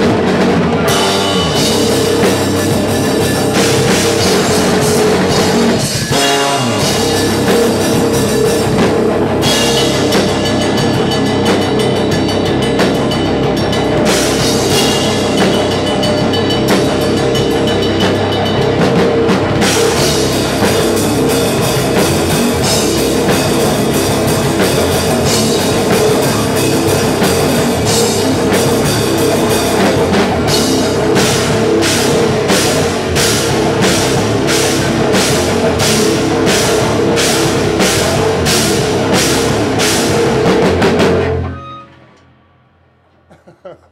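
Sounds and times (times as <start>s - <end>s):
heavy metal band playing: 0.0s - 42.2s.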